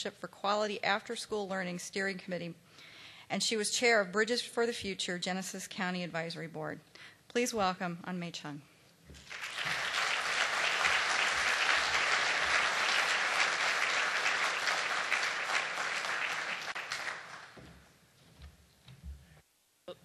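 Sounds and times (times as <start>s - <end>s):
audience applauding: 9.2s - 17.6s.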